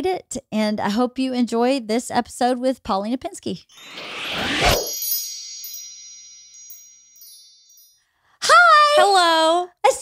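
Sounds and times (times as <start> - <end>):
chime ringing: 3.7 - 8.2
light tinkling strikes: 3.8 - 8.1.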